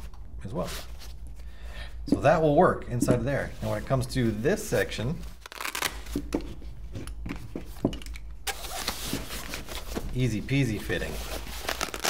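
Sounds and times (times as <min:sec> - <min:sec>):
scratchy fabric rustle: 0:08.5 - 0:12.0.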